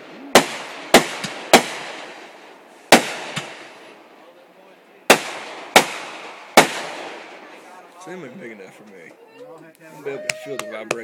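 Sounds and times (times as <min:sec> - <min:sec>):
fireworks bursting: 0:00.0 - 0:04.2, 0:05.0 - 0:08.0.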